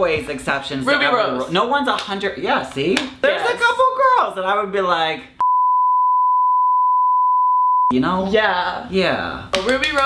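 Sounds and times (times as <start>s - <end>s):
censor bleep tone: 5.4s - 7.9s.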